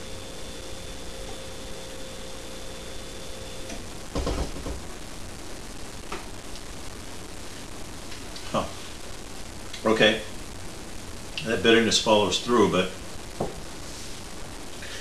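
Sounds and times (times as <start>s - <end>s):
room hiss: 0.0s - 15.0s
man breathing out: 14.8s - 15.0s.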